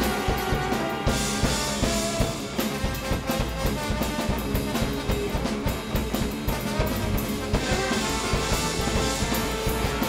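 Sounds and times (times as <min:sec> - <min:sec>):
busy drum kit: 0:00.0 - 0:10.0
jazz big band playing: 0:00.0 - 0:10.0.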